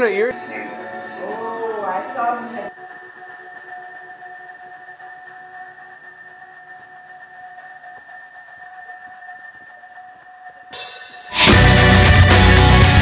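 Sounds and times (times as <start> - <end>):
high tone drone: 10.8 - 13.0.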